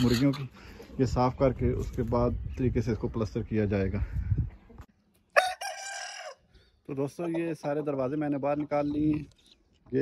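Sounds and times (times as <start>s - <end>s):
rooster crowing: 5.4s - 6.4s.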